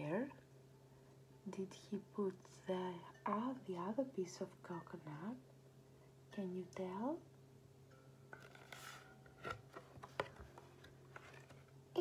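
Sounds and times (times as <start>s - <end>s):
low steady hum: 0.0s - 12.0s
book page turning: 8.4s - 11.7s.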